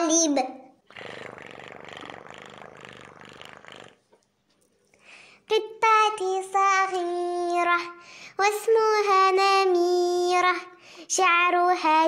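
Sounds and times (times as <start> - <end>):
cat purring: 0.9 - 4.0.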